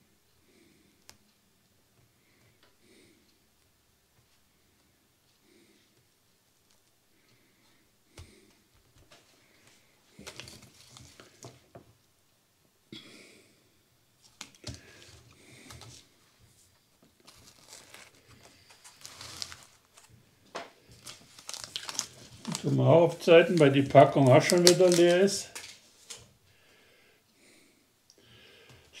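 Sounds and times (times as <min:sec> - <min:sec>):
paper seed packet crinkling: 0:10.2 - 0:11.4, 0:17.2 - 0:20.1, 0:20.9 - 0:26.3
handling noises from plant tubs: 0:17.3 - 0:20.1, 0:21.0 - 0:26.2
person speaking: 0:21.7 - 0:25.7.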